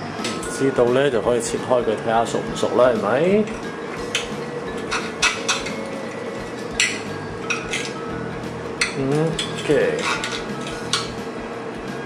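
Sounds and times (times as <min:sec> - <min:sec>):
knife and fork scraping a plate: 0:08.8 - 0:11.2.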